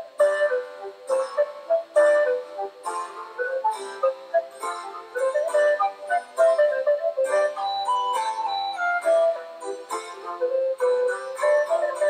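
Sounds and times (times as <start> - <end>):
harpsichord music: 0.0 - 12.0.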